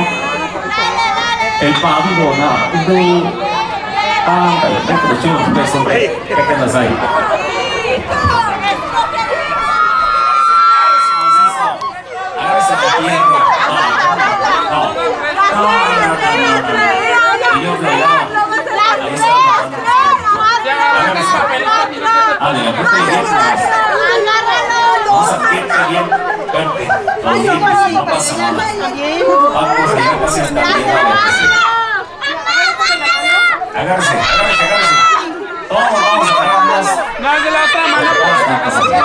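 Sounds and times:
crowd chatter: 0.0s - 39.0s.

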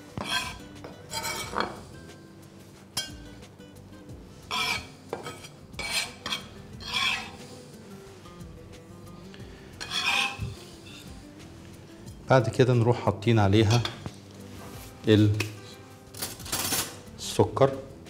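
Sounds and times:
faint background music: 0.0s - 18.0s.

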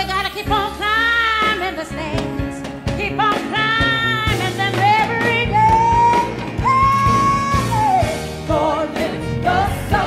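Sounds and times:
woman singing: 0.0s - 8.6s
band backing music: 0.0s - 10.0s.

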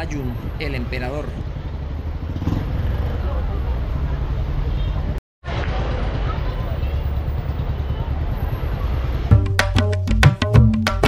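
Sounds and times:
voices of passersby: 0.0s - 9.3s.

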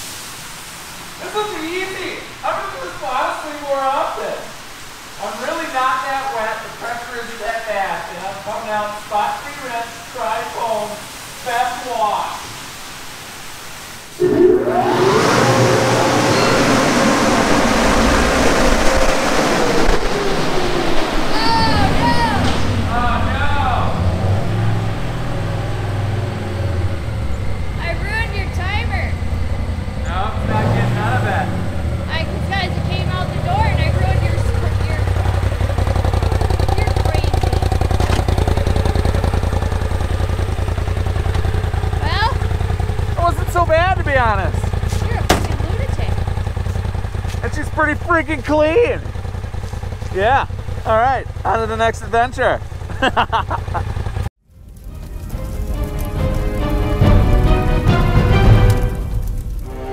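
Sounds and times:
hiss: 0.0s - 14.2s
high whine falling in pitch: 14.1s - 46.0s
engine running at low rumble: 14.2s - 59.9s.

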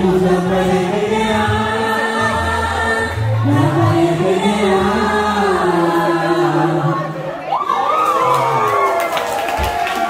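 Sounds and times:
song being sung: 0.0s - 7.4s
crowd cheering and shouting: 6.1s - 10.0s.

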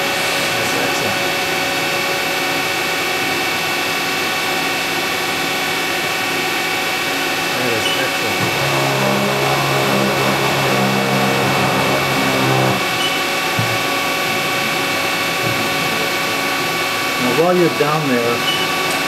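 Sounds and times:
machine spindle whining: 8.2s - 13.2s
low drive hum: 8.4s - 13.0s.

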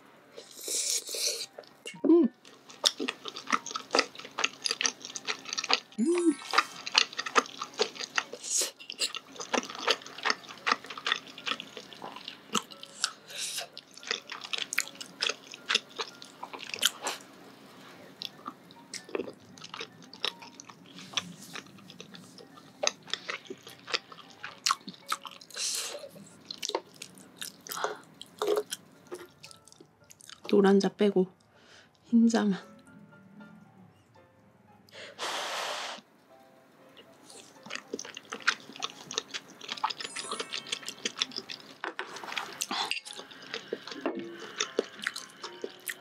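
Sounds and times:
close chewing mouth sounds: 2.4s - 17.2s, 18.2s - 30.5s, 37.3s - 46.0s.

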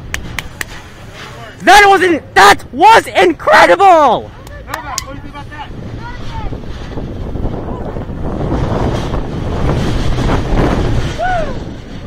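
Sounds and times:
roller coaster wheels rumbling: 0.0s - 12.0s
wind on microphone: 4.8s - 12.0s.

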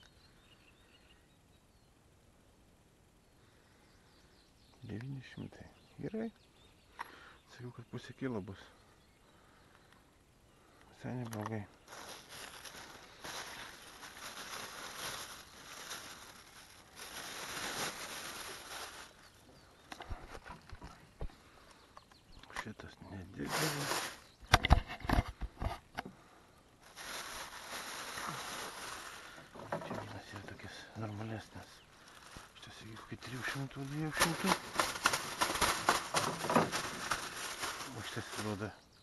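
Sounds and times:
rustling fishing gear: 11.1s - 22.7s, 23.4s - 38.7s.

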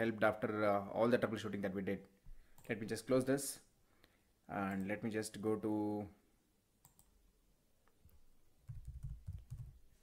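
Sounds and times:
laptop keyboard typing: 8.1s - 10.0s.

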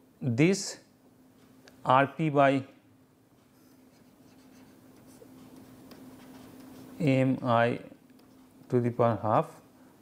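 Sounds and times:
low steady hum: 0.0s - 10.0s
stylus scratching on tablet: 3.6s - 7.1s.

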